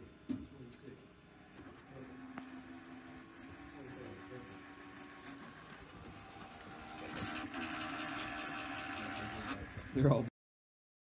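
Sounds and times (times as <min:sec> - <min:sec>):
computer fan whirring: 0:00.0 - 0:10.3.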